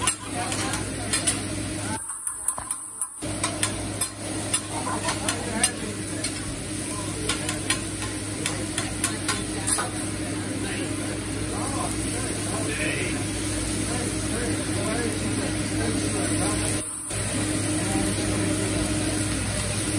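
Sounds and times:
steady sizzle: 0.0 - 19.9.

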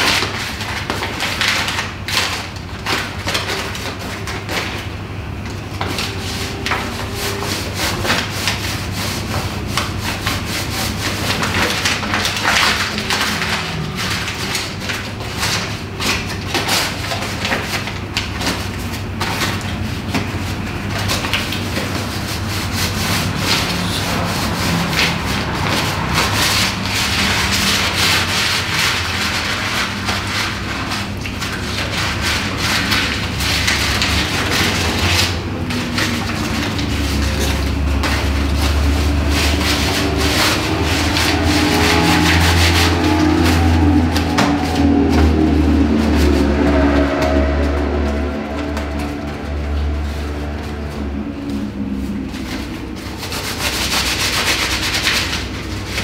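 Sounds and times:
harsh rushing and scraping noise: 0.0 - 56.0
wavering ambient drone tones: 39.4 - 53.0.

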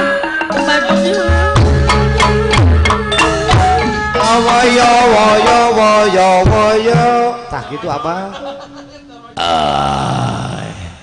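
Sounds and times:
man's guttural vocal sounds: 9.4 - 11.0.

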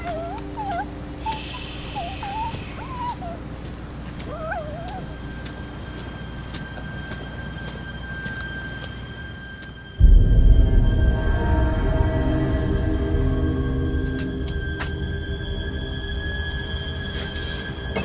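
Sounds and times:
bird warbling calls: 0.0 - 3.4.

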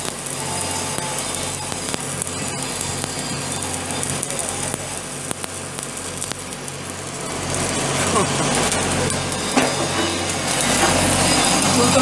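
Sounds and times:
arc welding crackling: 0.0 - 12.0
indistinct voices: 0.2 - 12.0.

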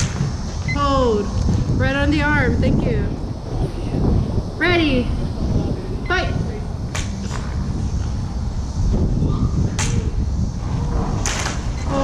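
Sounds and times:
low rumble: 0.0 - 12.0.

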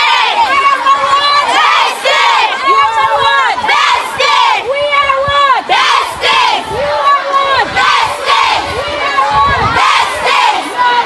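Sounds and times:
children chanting in unison: 0.0 - 4.7, 5.7 - 11.0.

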